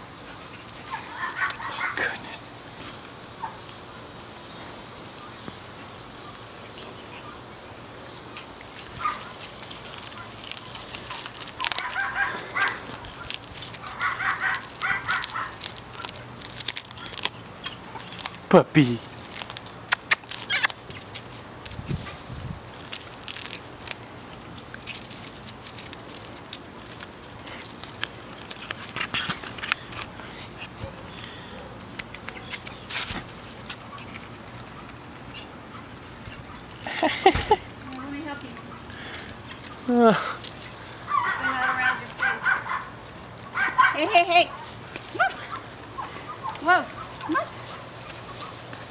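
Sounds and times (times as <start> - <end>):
puppies yipping: 0.0 - 2.1, 8.2 - 18.4, 19.8 - 21.0, 26.9 - 39.9, 40.5 - 48.9
dry leaf crackling: 0.0 - 48.9
leaves rustling: 0.0 - 48.9.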